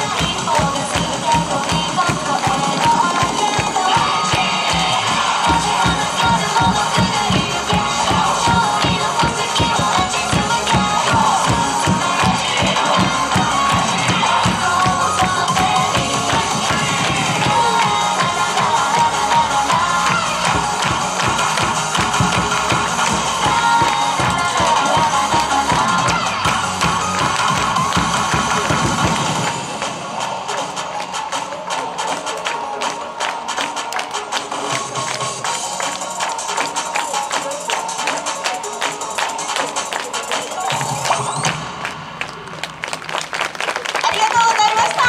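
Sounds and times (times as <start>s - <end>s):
crowd clapping in rhythm: 0.0s - 45.0s
upbeat music over pa: 0.0s - 45.0s.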